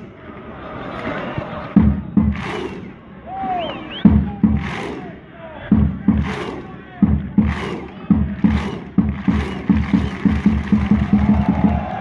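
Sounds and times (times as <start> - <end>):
crowd chanting in unison: 0.0 - 9.5
drum beating: 1.7 - 2.9, 4.0 - 5.1, 5.7 - 12.0.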